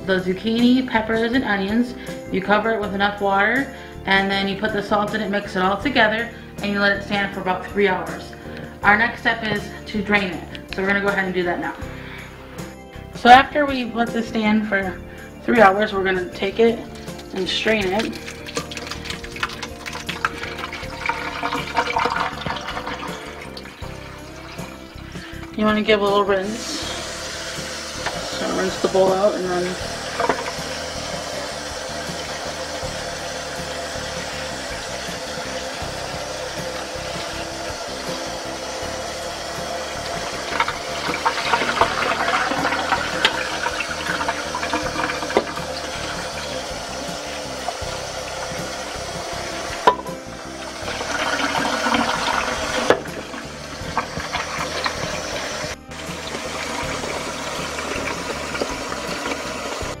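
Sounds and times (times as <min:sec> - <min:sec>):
faucet water splashing: 0:16.4 - 1:00.0.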